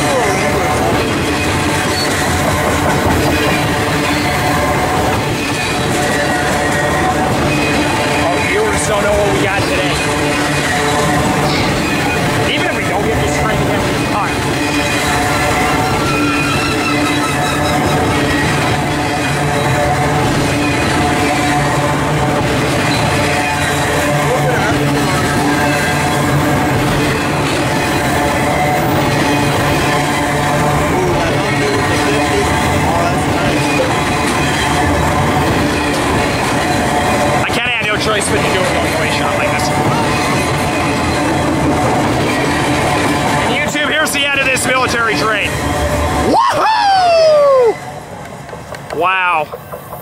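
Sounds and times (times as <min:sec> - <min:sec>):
freight train wheels rumbling on rails: 0:00.0 - 0:50.0.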